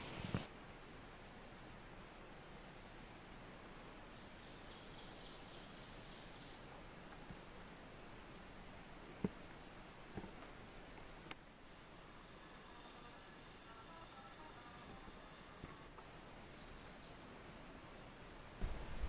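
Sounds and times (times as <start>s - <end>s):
forest ambience with hiss: 0.0s - 19.0s.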